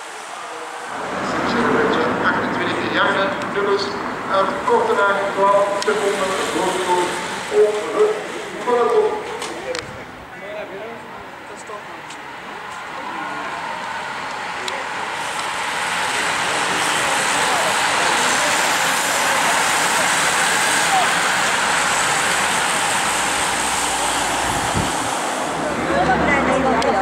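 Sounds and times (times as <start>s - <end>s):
bicycle tyres rushing on tarmac: 12.3s - 27.0s.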